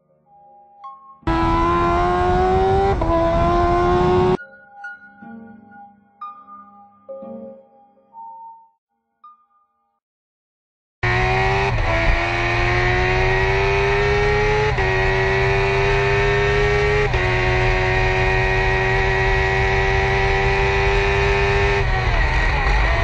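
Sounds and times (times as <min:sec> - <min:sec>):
motorcycle engine accelerating hard: 0:01.3 - 0:04.4, 0:11.0 - 0:23.0.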